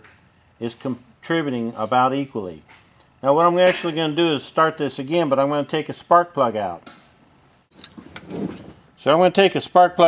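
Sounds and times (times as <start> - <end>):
equipment rubbing and scraping: 7.7 - 8.9.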